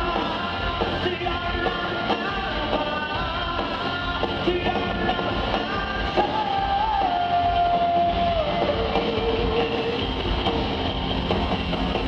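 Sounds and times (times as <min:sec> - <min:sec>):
live rock band playing loudly: 0:00.0 - 0:12.0.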